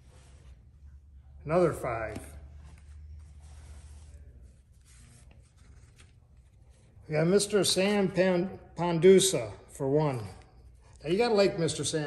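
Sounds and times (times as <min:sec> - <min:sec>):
paper banknotes rustling: 0:02.7 - 0:07.0.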